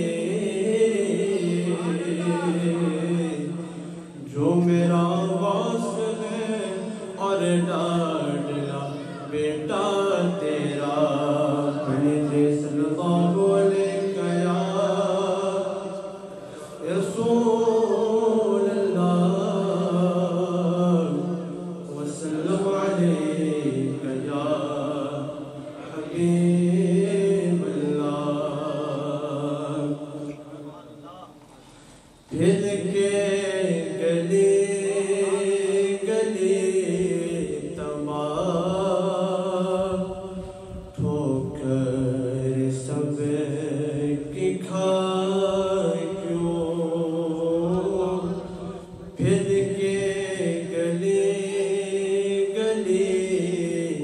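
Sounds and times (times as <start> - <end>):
man chanting devotional song: 0.0 - 54.0
man reciting melodic poem: 0.0 - 54.0.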